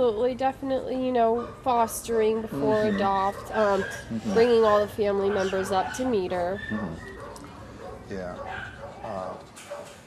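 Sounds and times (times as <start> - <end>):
small dog vocalizing: 2.4 - 4.7, 5.3 - 7.6
person speaking: 2.5 - 3.3, 4.1 - 4.8.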